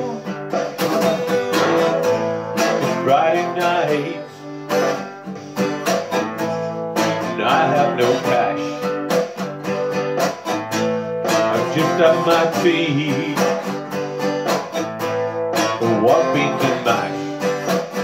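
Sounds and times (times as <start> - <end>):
acoustic guitar strummed: 0.0 - 18.0.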